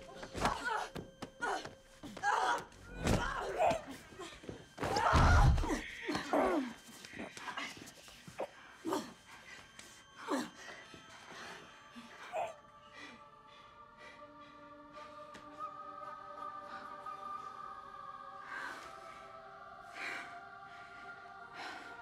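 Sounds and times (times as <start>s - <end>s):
low sustained music tones: 0.0s - 22.0s.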